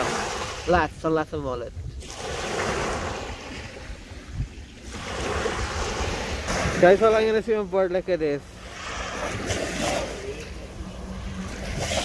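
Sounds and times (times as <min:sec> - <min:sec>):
small waves washing up beach: 0:00.0 - 0:12.0
wind rumbling on microphone: 0:00.0 - 0:12.0.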